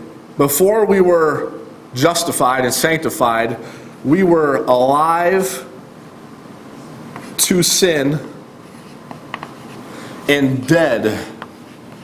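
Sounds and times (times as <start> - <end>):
chalk tapping on blackboard: 8.9 - 9.8, 11.4 - 12.0.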